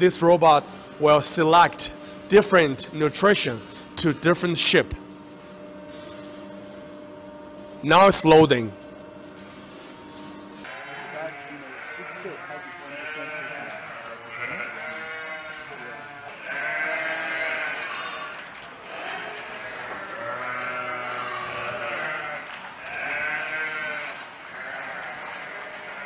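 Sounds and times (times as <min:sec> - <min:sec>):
sheep bleating: 0:10.6 - 0:26.0.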